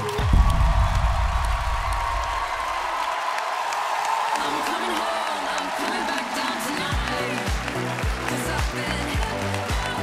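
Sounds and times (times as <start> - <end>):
audience cheering and applauding: 0.0 - 10.0
deep low boom: 0.2 - 2.6
dance music: 4.3 - 10.0.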